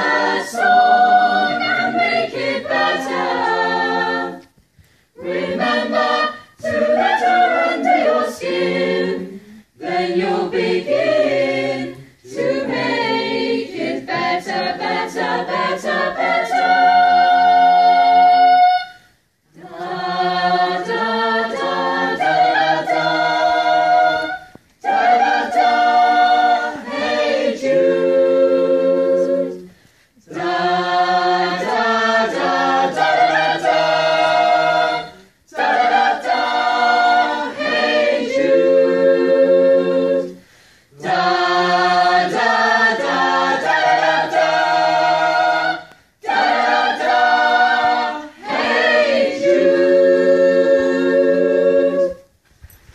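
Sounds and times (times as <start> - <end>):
choir singing a cappella: 0.0 - 52.4.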